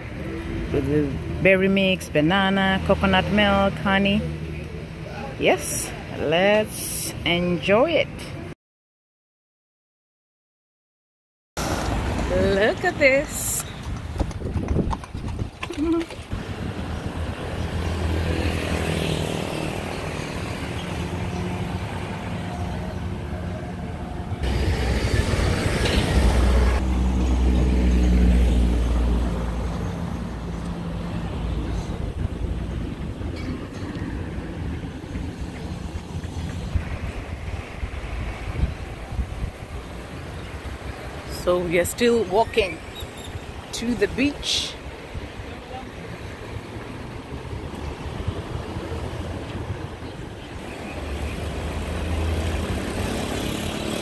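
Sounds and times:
heavy vehicle rumble: 11.6 - 41.2
vehicle engines humming: 11.6 - 54.0
horse hooves clip-clopping: 13.6 - 16.4.

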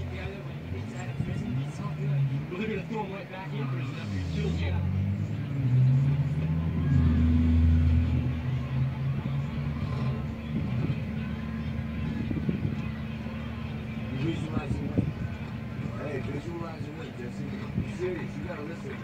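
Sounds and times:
car engines revving and idling: 0.0 - 19.0
voices: 0.0 - 19.0.

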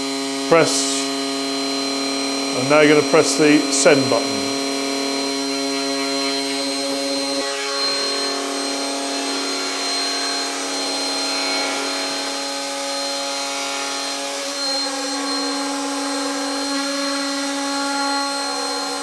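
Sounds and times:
cnc router spindle motor humming: 0.0 - 19.0.

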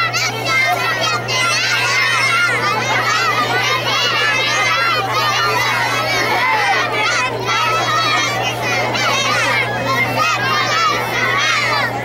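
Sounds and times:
children calling out together: 0.0 - 12.0.

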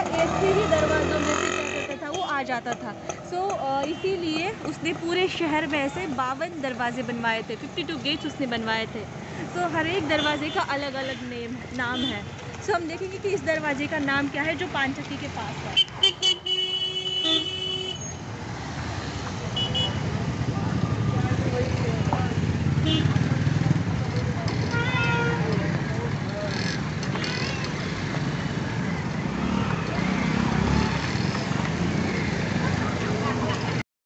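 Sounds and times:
traffic noise: 0.0 - 33.8.

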